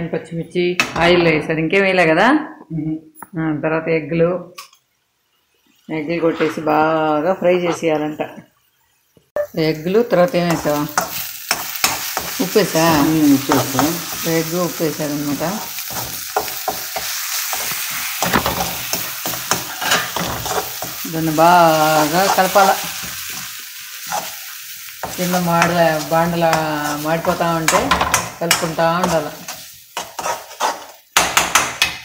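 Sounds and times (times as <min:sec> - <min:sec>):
eggs frying sizzle: 0:04.6 - 0:32.0
metal spatula scraping metal pan: 0:10.5 - 0:31.6.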